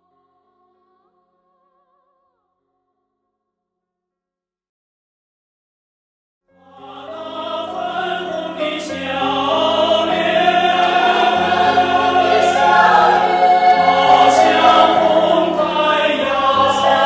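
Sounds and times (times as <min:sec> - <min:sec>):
choir singing held chords: 0:06.5 - 0:17.0.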